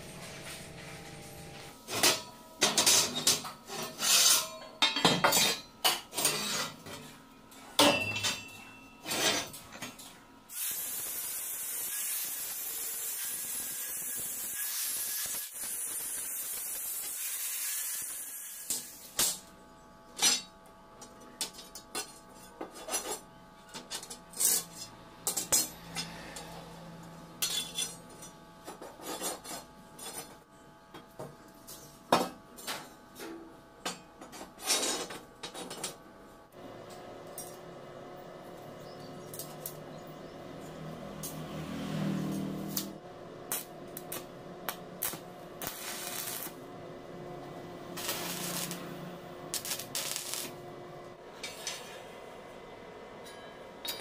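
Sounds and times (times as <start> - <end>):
steel pieces clanking on concrete: 1.9 - 7.0, 7.8 - 10.0, 27.4 - 30.4, 53.2 - 54.0.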